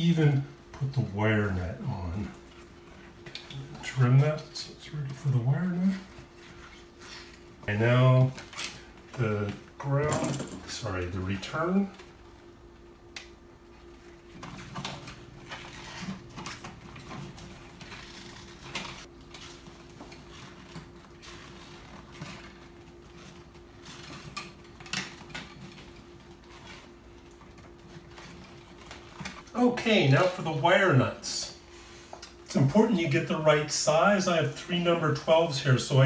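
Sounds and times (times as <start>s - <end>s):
faint steady hum: 0.0s - 36.0s.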